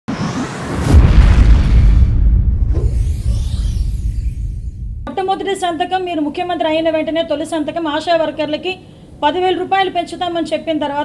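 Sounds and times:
noisy swell: 0.0s - 5.2s
deep bass boom: 0.6s - 5.1s.

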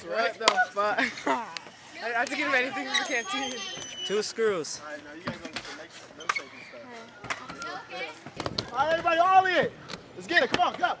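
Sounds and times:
people talking and chanting: 0.0s - 11.0s.

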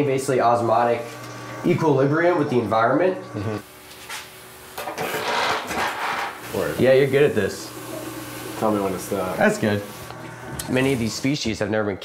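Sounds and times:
sprayer hissing water mist: 6.3s - 11.4s.

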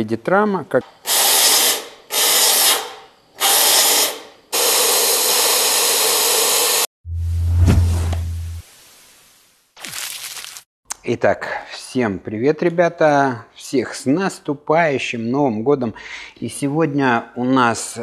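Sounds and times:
low hum rising and falling: 7.0s - 8.7s.

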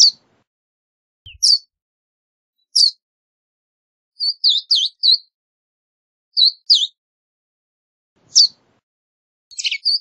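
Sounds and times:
bird high chipping notes: 1.3s - 1.6s.

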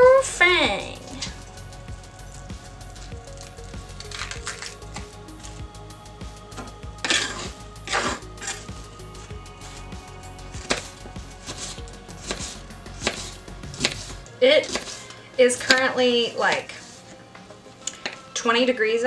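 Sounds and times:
knife slicing onion on board: 10.6s - 15.0s.

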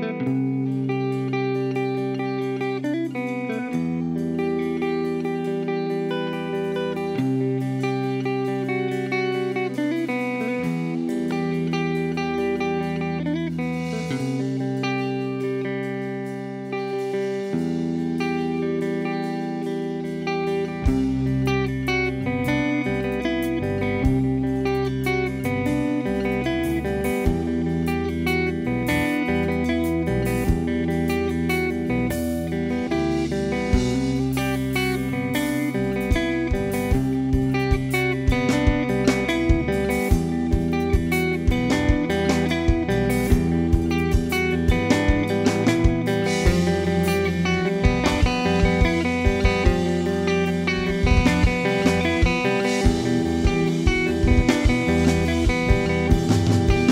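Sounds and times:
bass guitar: 0.0s - 56.9s
drum kit: 0.0s - 56.9s
electric guitar: 0.0s - 56.9s.

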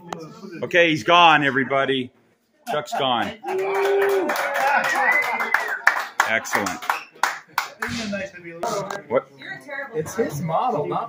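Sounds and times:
people clapping: 3.4s - 8.0s.

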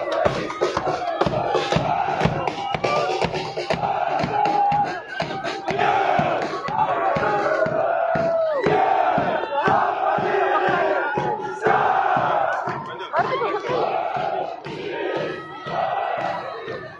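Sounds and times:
crowd shouting cheers: 0.0s - 16.9s.

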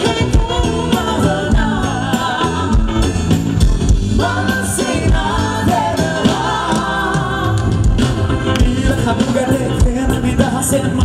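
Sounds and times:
woman singing pop song: 0.0s - 3.4s, 4.0s - 11.0s
bass and keyboard notes: 0.0s - 11.0s
steady drum beat: 0.0s - 11.0s.

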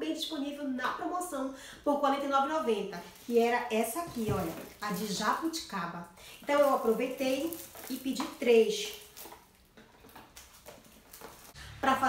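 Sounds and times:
cardboard boxes tapping and rustling: 4.0s - 5.2s.

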